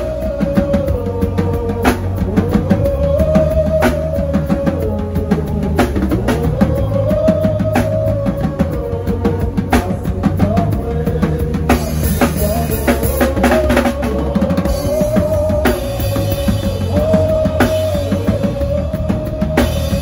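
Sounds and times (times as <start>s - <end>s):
bass groove: 0.0s - 20.0s
drum kit playing: 0.0s - 20.0s.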